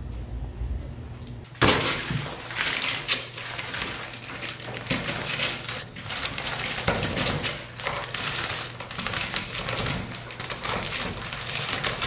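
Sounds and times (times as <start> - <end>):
plastic curtain rustling: 1.6 - 12.0.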